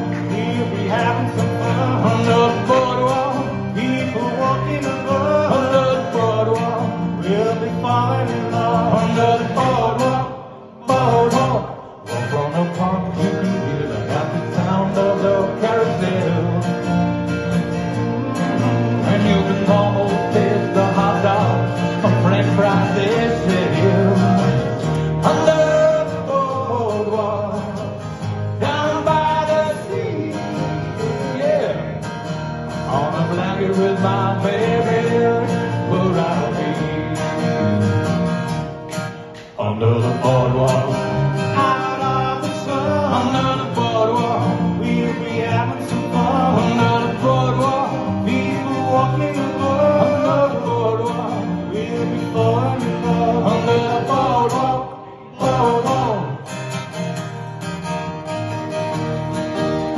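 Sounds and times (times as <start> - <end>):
man singing: 0.0 - 17.2, 18.2 - 37.9, 39.4 - 56.7
acoustic guitars strummed: 0.0 - 59.9.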